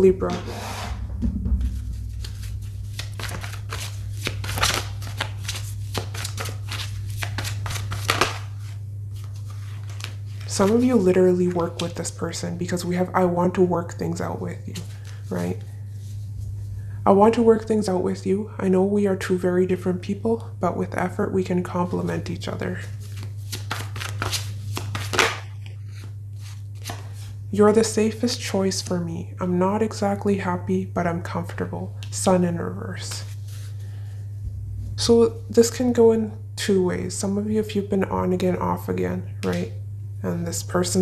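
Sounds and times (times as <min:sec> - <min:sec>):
steady low hum: 0:00.0 - 0:41.0
cards being shuffled: 0:01.8 - 0:12.1, 0:22.8 - 0:27.4.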